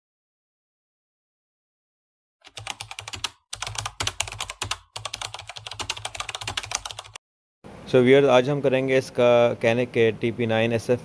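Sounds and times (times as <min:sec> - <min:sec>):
rapid dense clicking: 0:02.5 - 0:07.2.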